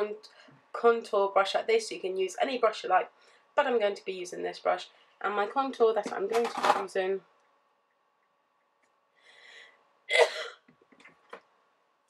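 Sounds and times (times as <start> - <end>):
woman sneezing: 10.1 - 10.6.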